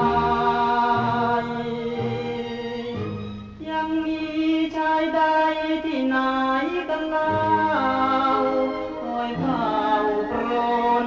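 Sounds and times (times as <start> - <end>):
song with long held notes: 0.0 - 11.0.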